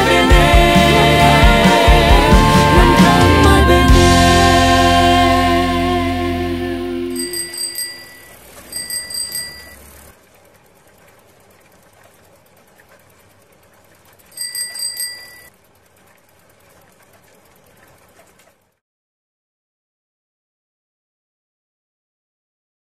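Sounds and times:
song: 0.0 - 7.8
bicycle bell ringing: 7.2 - 10.0, 14.3 - 15.5.

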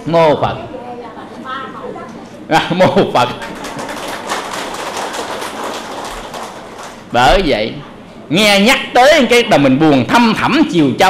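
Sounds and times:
large audience applauding: 3.2 - 7.1.

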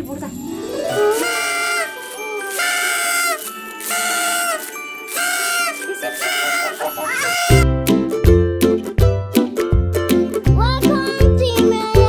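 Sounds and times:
toy party horn blasts: 0.9 - 7.7
upbeat plucked-string music: 5.8 - 12.0.

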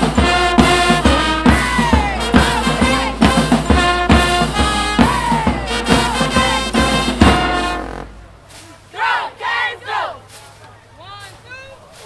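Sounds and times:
group shouting in unison: 1.4 - 3.2, 5.0 - 6.6, 8.9 - 10.2.

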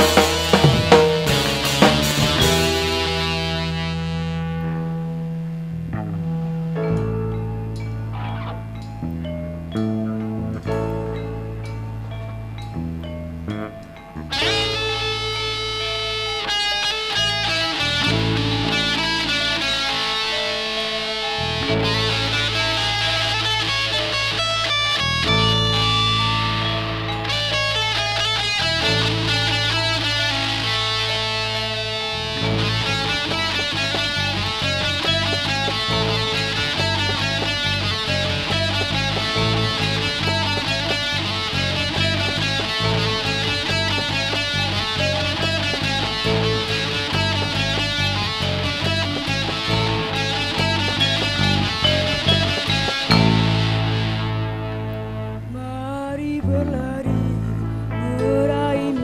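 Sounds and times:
drum kit: 0.0 - 4.9, 14.3 - 54.7
electric bass: 0.0 - 59.0
electric guitars: 0.0 - 59.0.

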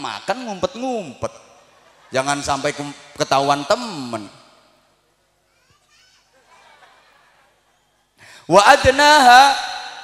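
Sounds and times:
children's voices: 5.5 - 6.8.

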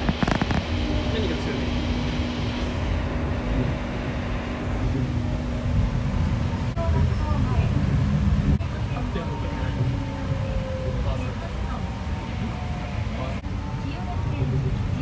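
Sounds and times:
faint motor whine: 0.0 - 15.0
train cabin rumble: 0.0 - 15.0.

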